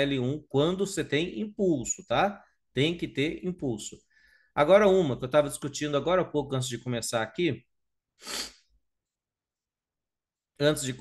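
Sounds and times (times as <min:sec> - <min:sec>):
man's breathy vocal burst: 0:08.2 - 0:08.7.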